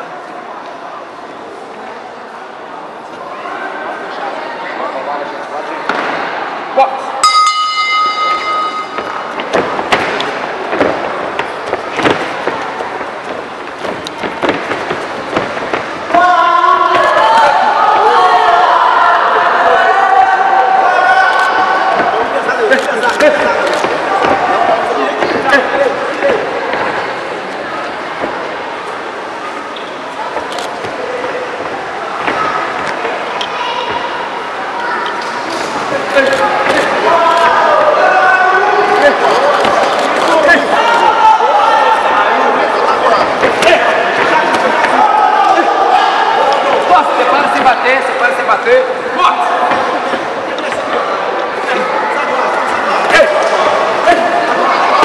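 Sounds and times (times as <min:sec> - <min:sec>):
boxing ring bell: 0:07.2 - 0:09.3
people shouting: 0:16.1 - 0:26.4, 0:36.2 - 0:47.5.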